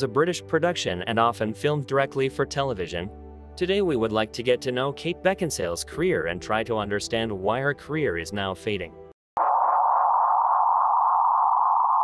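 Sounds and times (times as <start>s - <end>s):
steady electronic tone: 9.4s - 12.0s.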